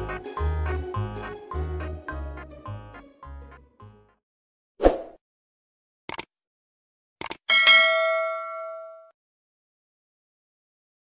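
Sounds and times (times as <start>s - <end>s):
quick clicks: 6.1s - 6.3s, 7.2s - 7.4s
bell ding: 7.5s - 9.2s.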